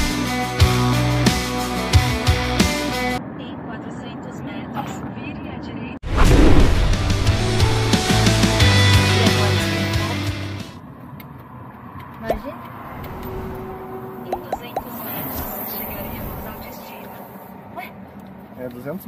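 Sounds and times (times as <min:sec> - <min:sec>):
background music: 0:00.0 - 0:03.2, 0:06.2 - 0:10.8.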